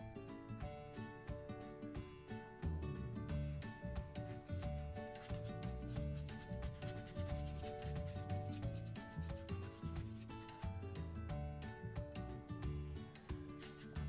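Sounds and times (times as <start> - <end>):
background music: 0.0 - 14.0
paintbrush scrubbing on board: 4.0 - 10.8, 13.2 - 14.0.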